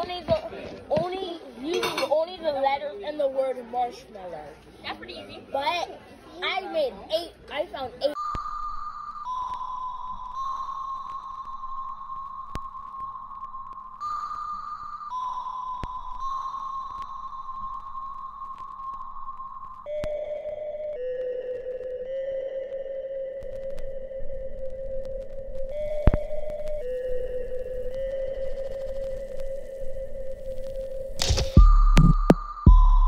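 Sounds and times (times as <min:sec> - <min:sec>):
slow electronic melody: 0:08.2 - 0:33.0
sharp clicks: 0:30.6 - 0:32.4.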